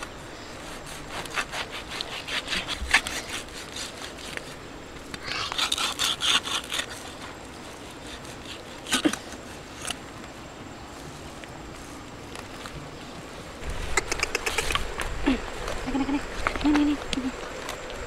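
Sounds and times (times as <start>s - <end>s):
cleaver rasping through meat: 0.6s - 4.6s, 5.2s - 9.9s.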